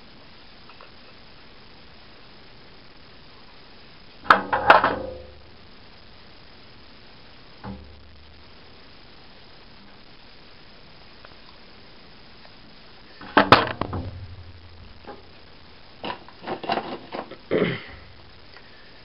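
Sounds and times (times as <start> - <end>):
rustling: 2.9 - 19.0
plastic parts clicking and knocking: 4.2 - 5.2, 13.2 - 14.4.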